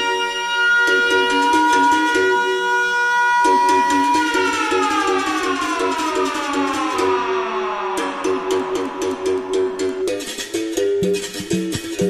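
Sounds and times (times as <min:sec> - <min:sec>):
siren-like synth tone gliding down: 0:00.0 - 0:10.6
electronic dance music: 0:00.0 - 0:12.0
repeating low synth riff: 0:03.3 - 0:11.6.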